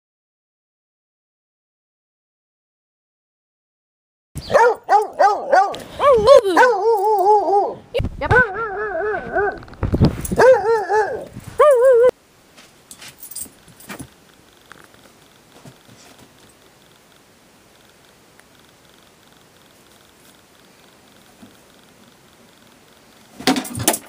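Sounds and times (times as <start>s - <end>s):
dog baying howl: 4.4s - 7.8s, 8.4s - 9.6s, 10.4s - 12.1s.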